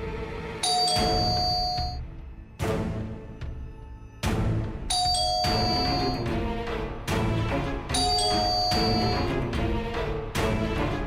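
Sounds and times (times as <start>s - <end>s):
dramatic background music: 0.0s - 11.0s
doorbell ding-dong chime: 0.6s - 2.0s, 4.9s - 6.3s, 7.9s - 9.4s.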